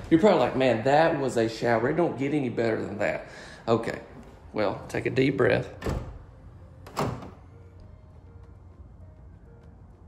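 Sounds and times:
faint background music: 0:00.0 - 0:10.0
door latch clunk: 0:06.8 - 0:07.4.

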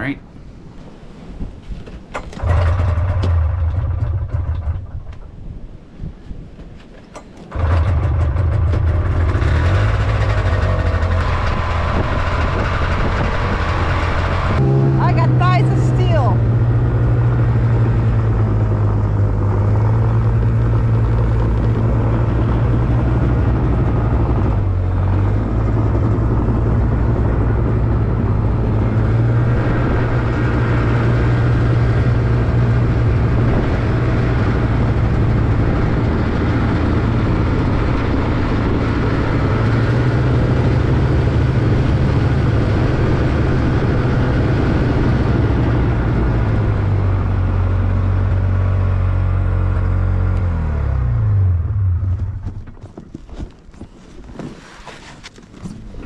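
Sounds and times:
snowmobile engine running: 0:02.4 - 0:05.2, 0:07.5 - 0:52.6.

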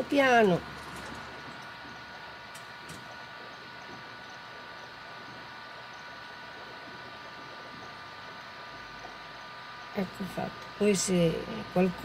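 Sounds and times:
faint high whine: 0:00.0 - 0:12.0
steady background hiss: 0:00.0 - 0:12.0.

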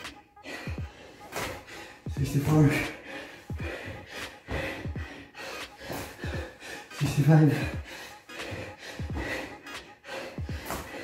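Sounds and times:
man gasping breaths: 0:00.1 - 0:11.0.

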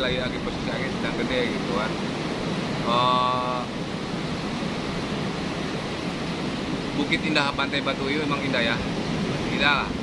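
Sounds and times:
sea surf: 0:00.0 - 0:10.0
strong wind: 0:00.0 - 0:10.0.

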